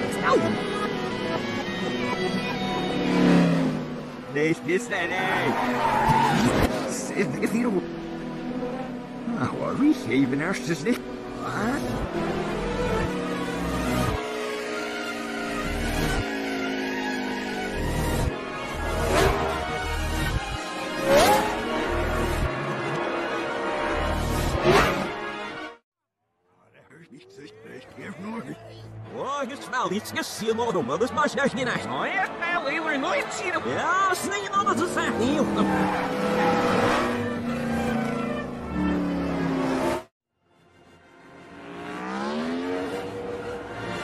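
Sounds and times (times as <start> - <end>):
reversed engine tone: 1.2 - 25.0, 30.8 - 44.0.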